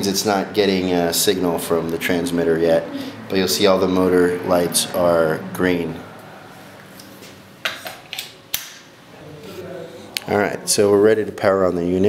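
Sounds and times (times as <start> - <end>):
sharp click: 7.7 - 8.9.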